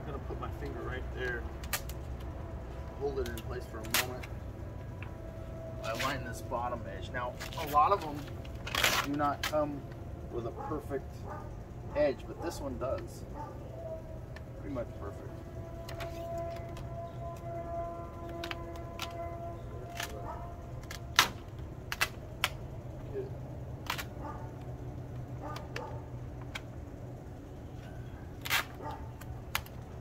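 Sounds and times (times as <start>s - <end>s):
steady low hum: 0.0s - 30.0s
vinyl decal crackling and snapping: 0.5s - 2.4s, 3.1s - 5.2s, 5.8s - 6.2s, 7.3s - 10.1s, 15.7s - 22.8s, 23.7s - 26.8s, 28.3s - 30.0s.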